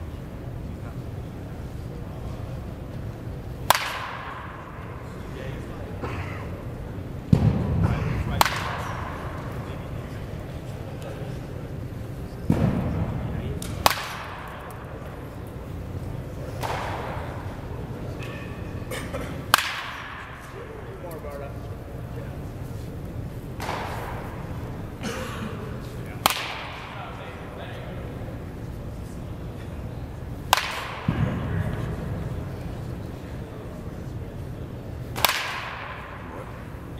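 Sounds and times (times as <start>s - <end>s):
baseball bat striking ball: 3.6s - 5.0s, 7.3s - 9.6s, 12.5s - 15.5s, 16.5s - 18.6s, 19.5s - 21.2s, 23.6s - 24.8s, 26.2s - 27.1s, 30.4s - 32.4s, 35.1s - 36.9s.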